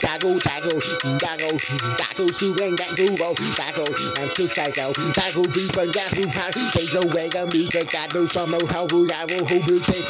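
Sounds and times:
rapping over a pulsing beat: 0.0 - 10.0.

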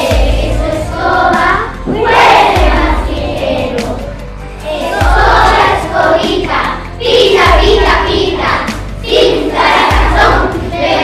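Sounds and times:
children chanting and shouting: 0.0 - 11.0.

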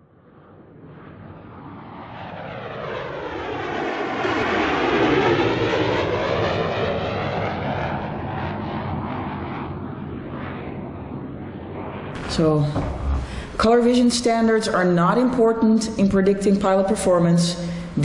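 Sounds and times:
aircraft flying over: 0.0 - 18.0.

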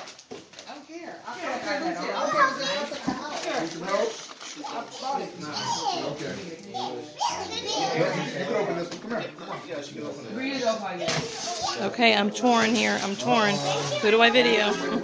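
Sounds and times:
children chattering: 1.4 - 15.0.

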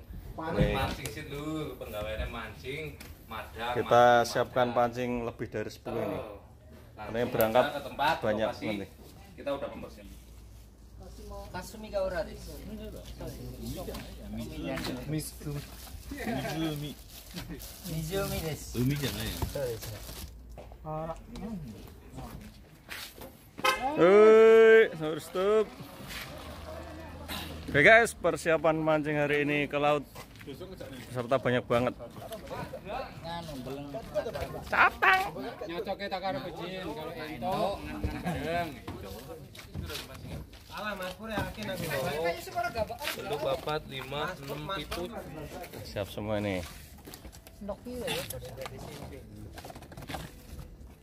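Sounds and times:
plastic bags rustling: 12.4 - 20.5.

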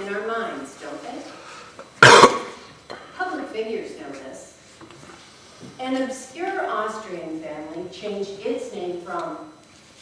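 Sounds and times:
loud sharp cough: 2.0 - 2.6.

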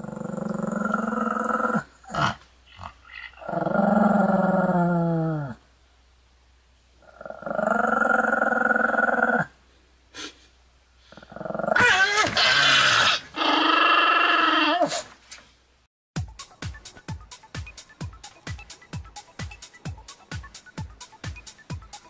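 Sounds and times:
small dog growling: 0.0 - 5.6, 7.0 - 9.6, 11.0 - 15.0.

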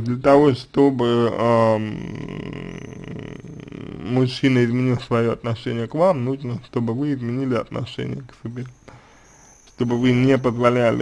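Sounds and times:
man's creaky hesitation sound: 1.2 - 11.0.

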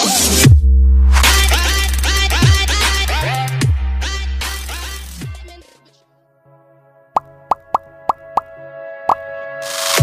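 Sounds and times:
soft background music: 5.6 - 10.0
cartoon pop sound effects: 7.2 - 8.5.

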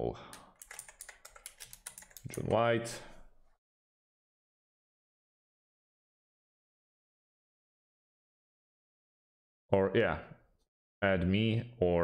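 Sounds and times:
keyboard typing: 0.3 - 2.5.

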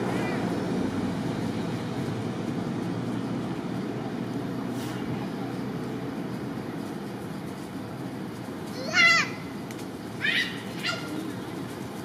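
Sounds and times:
macaque calling: 10.2 - 11.3.

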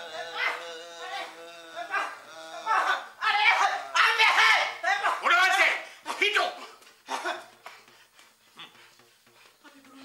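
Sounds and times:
person making drawn-out pitched sounds: 0.0 - 4.8.

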